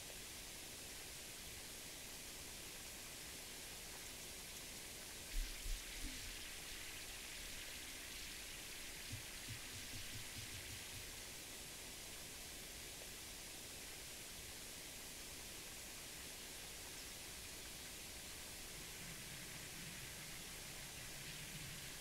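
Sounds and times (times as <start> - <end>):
faint outdoor hiss: 0.0 - 22.0.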